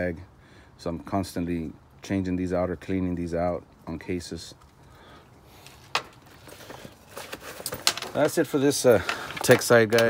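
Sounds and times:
tool bag rustling: 5.5s - 9.8s.

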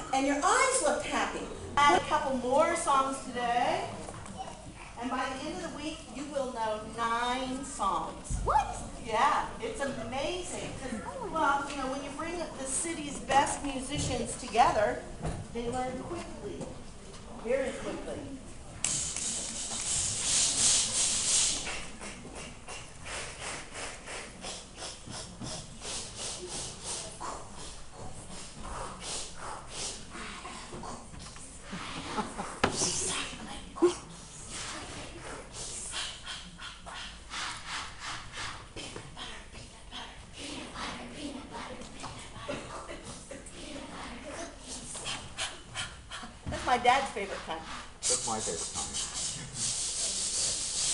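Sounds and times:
children hissing breaths: 18.8s - 38.7s, 47.8s - 50.9s.

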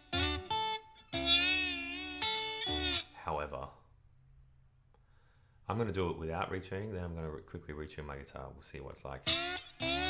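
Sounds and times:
slide electric guitar notes: 0.0s - 3.2s, 9.2s - 10.0s.

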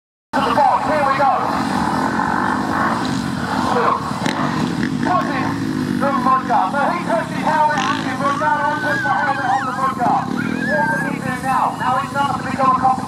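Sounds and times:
man talking: 0.4s - 1.5s, 5.0s - 13.0s
motorbike engine running: 0.4s - 13.0s.

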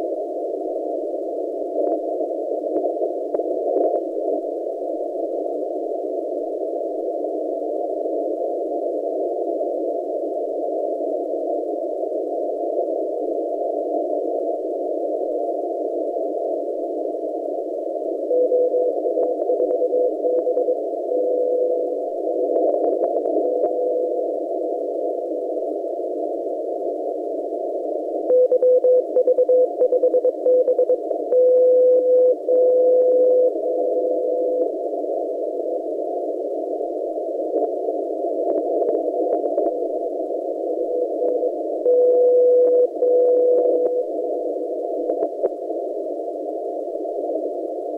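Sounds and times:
radio hiss: 0.0s - 47.9s
morse code tone: 18.3s - 21.9s, 28.3s - 34.6s, 41.3s - 44.1s.

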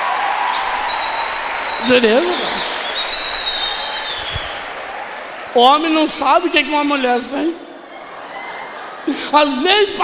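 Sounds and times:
audience applauding: 0.0s - 7.0s.

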